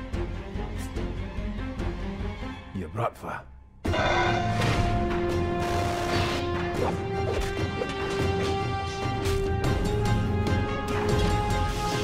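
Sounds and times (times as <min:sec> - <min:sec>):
dramatic music sustained chord: 0:03.8 - 0:12.0.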